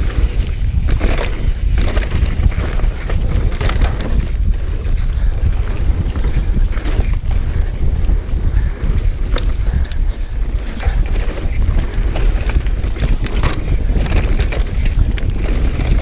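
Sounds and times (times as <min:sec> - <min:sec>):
bike clicks and rattles: 0:00.0 - 0:16.0
tyres rumbling on dirt: 0:00.0 - 0:16.0
wind buffeting microphone: 0:00.0 - 0:16.0.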